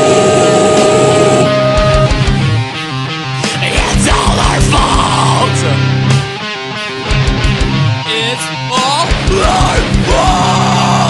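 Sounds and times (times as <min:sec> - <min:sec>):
long held note: 0:00.0 - 0:02.2
distorted electric guitars: 0:00.0 - 0:11.0
drums: 0:00.0 - 0:11.0.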